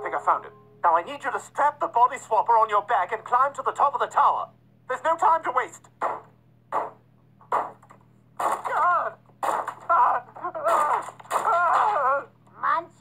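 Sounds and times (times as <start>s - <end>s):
bangs on a door: 6.0s - 9.9s.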